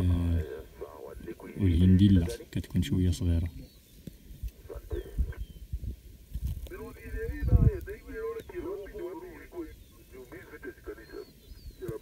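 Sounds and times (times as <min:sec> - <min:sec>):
wind buffeting microphone: 0:04.3 - 0:08.8.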